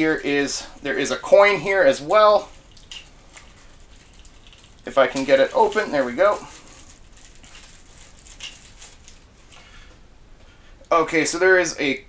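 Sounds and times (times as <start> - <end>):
plastic packaging crinkling: 0.0 - 9.9.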